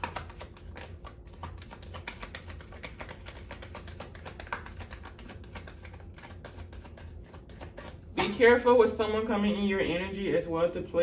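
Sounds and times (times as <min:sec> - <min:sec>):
cards being shuffled: 0:00.0 - 0:08.2.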